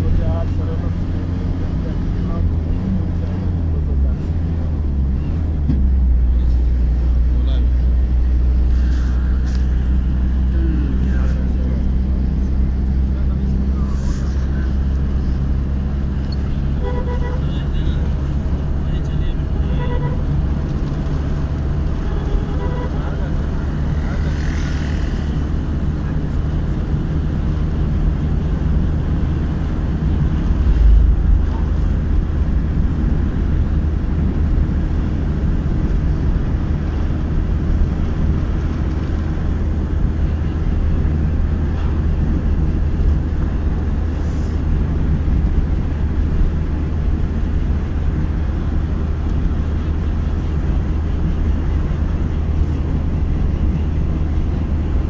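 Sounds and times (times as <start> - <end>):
short horn beeps: 16.8 - 17.6, 19.6 - 20.3, 22.0 - 23.2
motorcycle engine running: 21.5 - 26.4.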